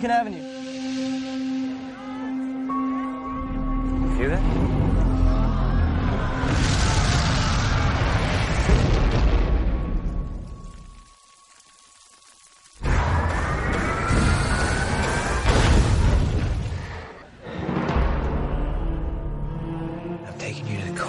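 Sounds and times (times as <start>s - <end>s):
music: 0.0s - 7.4s, 17.4s - 21.0s
rising tones: 3.2s - 8.6s
loud blast: 5.9s - 10.6s.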